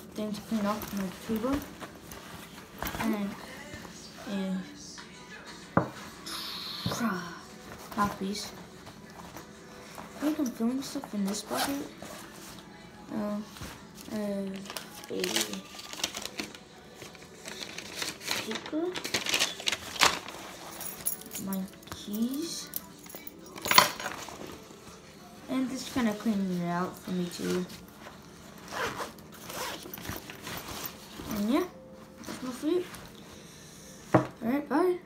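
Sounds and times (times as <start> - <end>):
paper rustling: 0.3 - 3.8, 13.4 - 21.1, 25.7 - 31.5
backpack zipper being pulled: 28.6 - 30.0.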